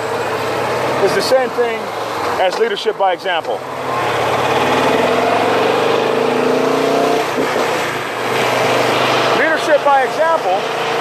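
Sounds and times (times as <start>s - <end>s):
wind and road noise: 0.0s - 11.0s
motorcycle engine accelerating: 3.6s - 11.0s.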